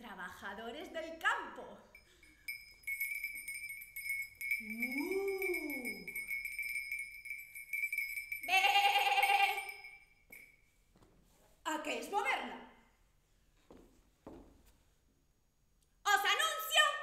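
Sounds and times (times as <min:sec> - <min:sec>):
steady high whistle-like tone: 0:04.0 - 0:07.1.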